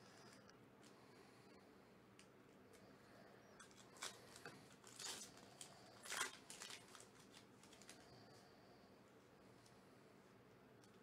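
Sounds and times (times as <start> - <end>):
card pack wrapper tearing: 3.6 - 8.0.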